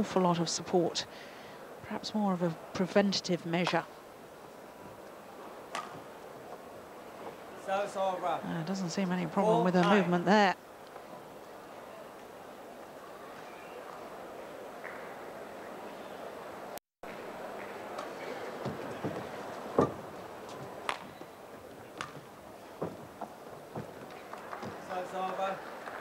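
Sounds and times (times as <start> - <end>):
racket hitting shuttlecock: 5.7 - 6.0, 22.0 - 22.3
indoor crowd murmur: 11.0 - 26.0.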